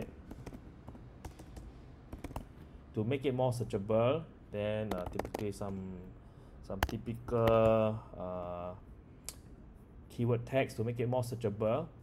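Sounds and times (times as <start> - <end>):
keyboard keystrokes: 0.3 - 2.5.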